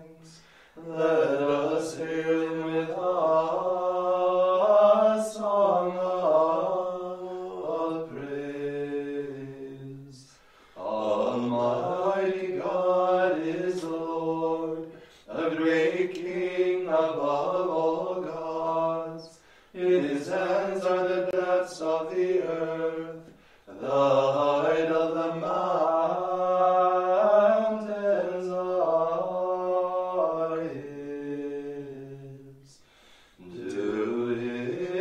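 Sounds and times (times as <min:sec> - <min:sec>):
voices singing plainchant: 0:00.0 - 0:35.0.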